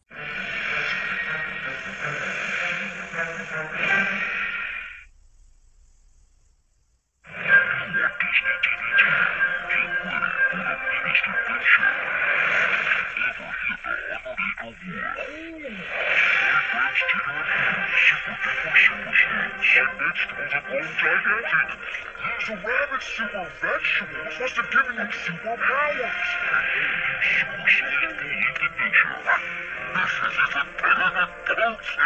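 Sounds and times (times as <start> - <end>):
animated trailer soundtrack: 0.0 - 5.1, 7.3 - 32.0
background music: 0.0 - 5.1, 7.3 - 32.0.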